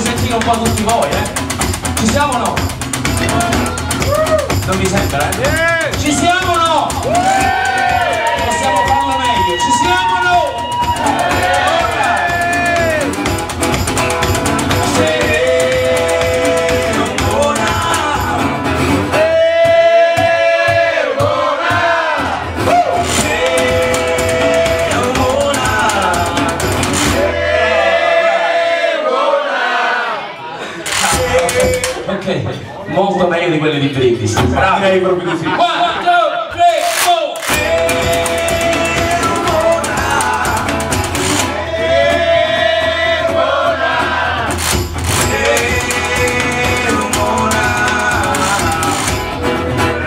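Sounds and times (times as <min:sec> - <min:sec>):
washboard rhythm: 0:00.0 - 0:28.2, 0:36.6 - 0:50.0
crowd shouting along: 0:06.6 - 0:13.3, 0:19.2 - 0:32.1, 0:35.7 - 0:49.3
resonator guitar: 0:10.5 - 0:19.4, 0:37.5 - 0:42.0, 0:44.3 - 0:50.0
men singing: 0:10.8 - 0:13.3, 0:14.2 - 0:30.2, 0:37.4 - 0:50.0.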